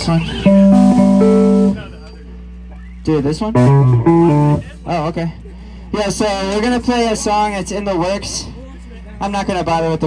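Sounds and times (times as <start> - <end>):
guitar chord: 0.0 - 2.2, 3.5 - 4.6
low steady hum: 0.0 - 10.0.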